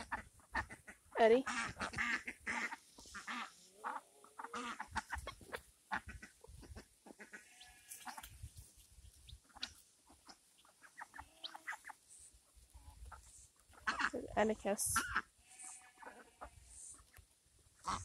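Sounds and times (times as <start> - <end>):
ducks calling: 0.0 - 8.3, 9.3 - 14.3, 17.8 - 18.0
chickens calling: 0.0 - 14.3, 14.9 - 18.0.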